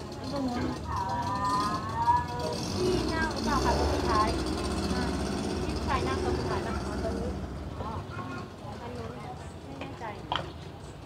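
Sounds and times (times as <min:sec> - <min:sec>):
indistinct voices talking: 0:00.0 - 0:10.6
low engine rumble: 0:00.0 - 0:11.0.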